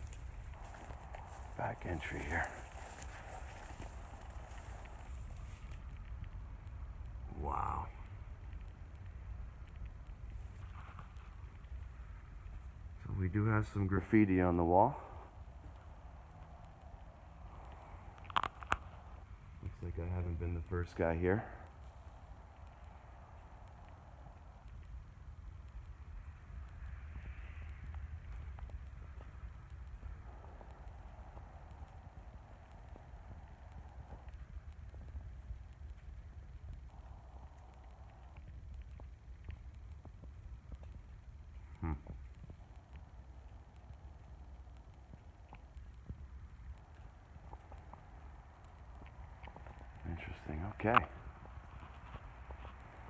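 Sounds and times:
footsteps on dirt and straw: 0:00.0 - 0:05.8.

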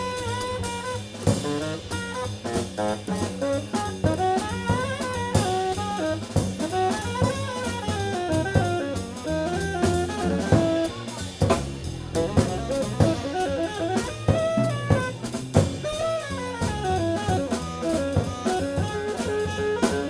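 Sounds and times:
drum and cymbal hits: 0:00.0 - 0:20.0
saxophone melody: 0:00.0 - 0:20.0
upright bass walking: 0:00.0 - 0:20.0.

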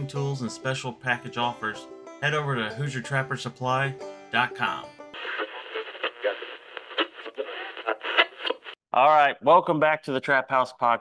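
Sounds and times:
voice over old radio: 0:05.2 - 0:08.7
radio crackle: 0:05.2 - 0:08.8.

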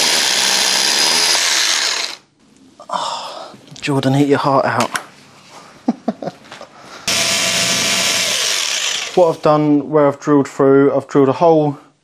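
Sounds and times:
power drill boring into concrete: 0:00.0 - 0:02.2, 0:07.1 - 0:09.4.

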